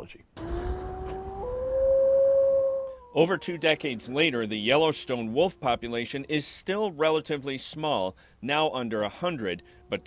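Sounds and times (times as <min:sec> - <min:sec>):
wolf howling: 0:00.4 - 0:06.4, 0:09.2 - 0:10.0.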